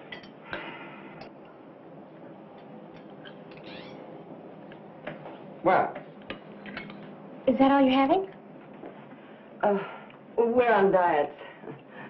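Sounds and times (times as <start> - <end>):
low steady hum: 0.0 - 12.0
cutlery clinking on dishes: 6.3 - 7.0.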